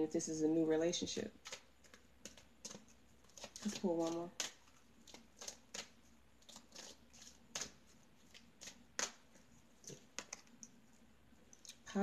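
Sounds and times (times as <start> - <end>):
cards shuffled by hand: 1.4 - 10.6.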